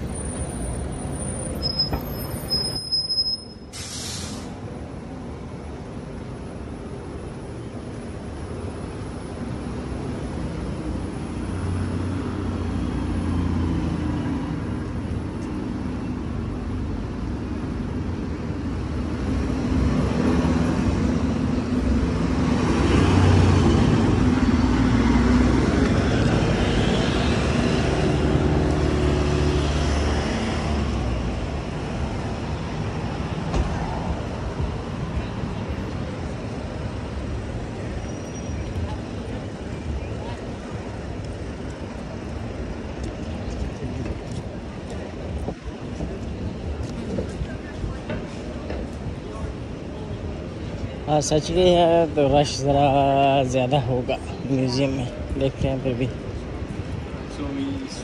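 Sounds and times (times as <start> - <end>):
city street traffic: 0.0 - 58.0.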